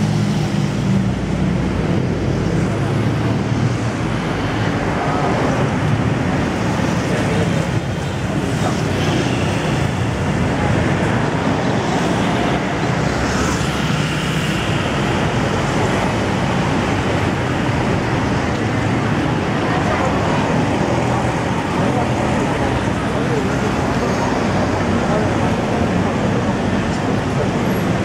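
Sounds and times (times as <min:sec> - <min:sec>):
cars and motorbikes passing: 0:00.0 - 0:28.0.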